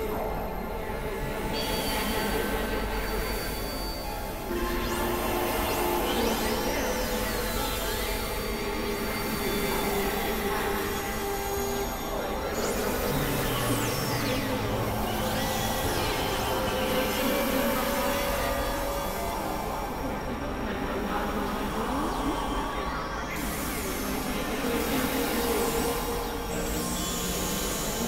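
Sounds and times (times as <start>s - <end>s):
synthesizer drone: 0.0s - 28.0s
high sweeping tones: 1.9s - 28.0s.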